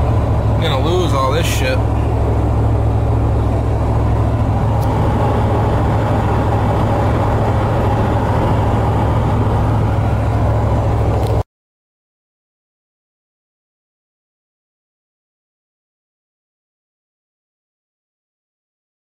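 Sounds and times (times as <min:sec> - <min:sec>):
truck engine and road noise: 0:00.0 - 0:11.5.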